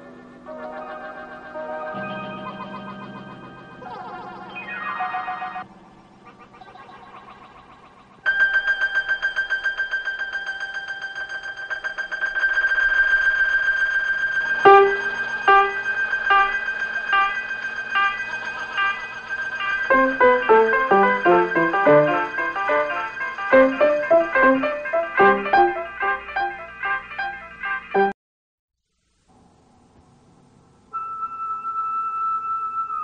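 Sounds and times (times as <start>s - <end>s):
struck ringing notes: 0.0s - 4.8s, 8.3s - 28.2s
electronic tape music tones: 0.0s - 8.5s, 14.4s - 28.2s, 30.8s - 33.0s
pulsing high tone: 11.8s - 27.4s.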